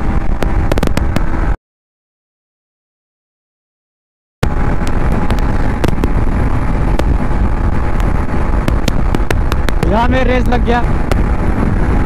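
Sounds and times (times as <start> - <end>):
motorcycle engine at speed: 0.0 - 1.6, 4.4 - 12.0
road noise: 0.0 - 1.6, 4.4 - 12.0
wind buffeting microphone: 0.0 - 1.6, 4.4 - 12.0
sharp ticks: 8.0 - 10.5.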